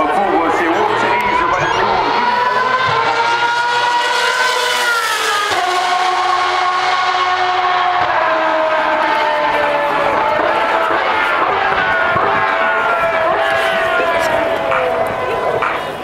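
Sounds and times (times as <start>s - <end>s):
racing car engine at high revs: 0.0s - 16.0s.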